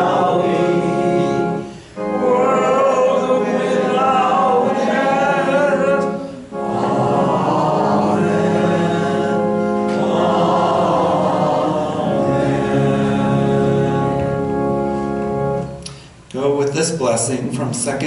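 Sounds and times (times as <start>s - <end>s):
congregation singing a hymn: 0.0s - 15.8s
organ chords: 0.0s - 18.0s.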